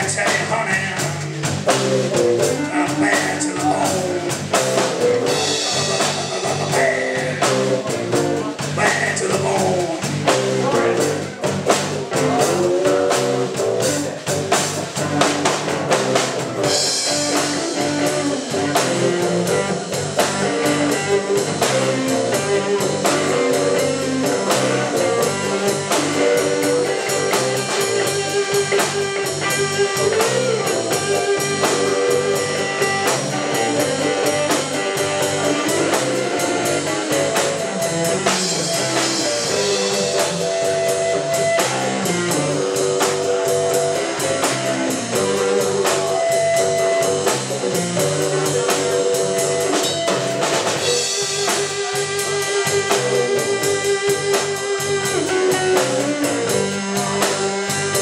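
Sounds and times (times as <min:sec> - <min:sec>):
bass guitar: 0:00.0 - 0:58.0
drum kit steady beat: 0:00.0 - 0:58.0
electric guitar sliding notes: 0:00.0 - 0:58.0.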